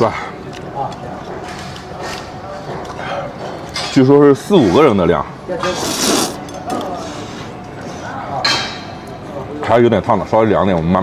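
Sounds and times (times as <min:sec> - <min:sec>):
man slurping noodles: 0:05.8 - 0:06.4.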